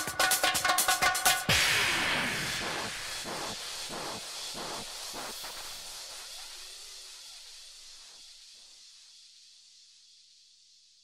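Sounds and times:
electronic background music: 0.0s - 4.8s.

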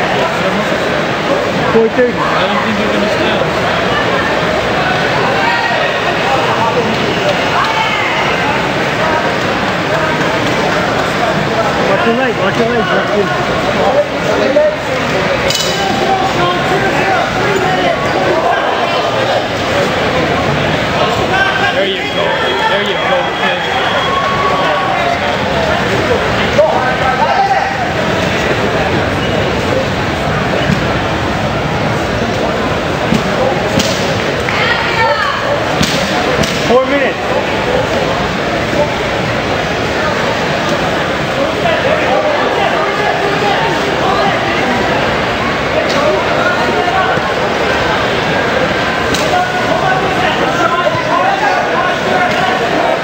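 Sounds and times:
crowd of voices talking: 0.0s - 53.0s.

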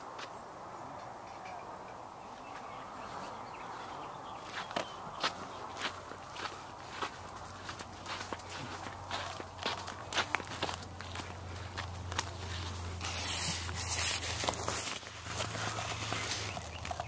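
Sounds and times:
footsteps crunching on dirt: 2.5s - 17.0s.

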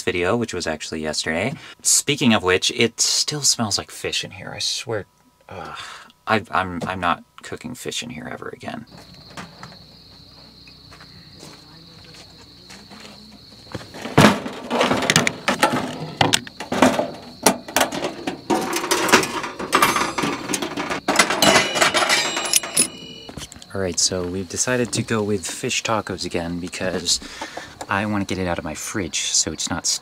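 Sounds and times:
high insect trill: 0.1s - 30.0s
metal clacks and knocks: 14.0s - 23.5s.

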